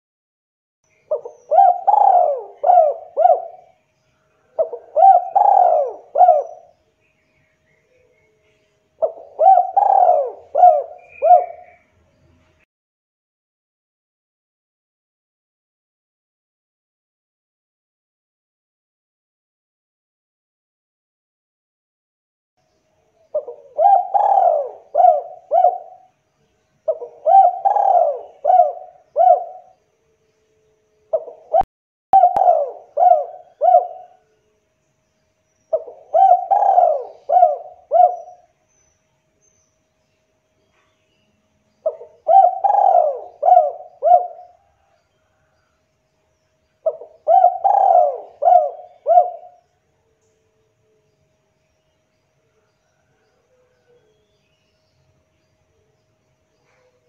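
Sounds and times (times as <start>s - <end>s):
dove cooing: 1.0s - 6.7s, 9.0s - 11.8s, 23.3s - 26.1s, 26.8s - 29.8s, 31.1s - 34.3s, 35.7s - 38.6s, 41.8s - 45.5s, 46.8s - 49.6s.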